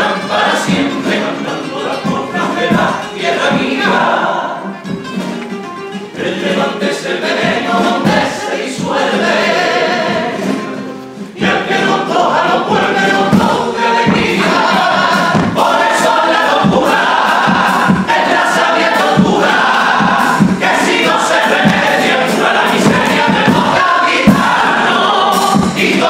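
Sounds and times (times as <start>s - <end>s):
male choir singing: 0.0s - 4.7s, 6.2s - 10.6s, 11.4s - 26.0s
guitar accompaniment: 0.0s - 26.0s.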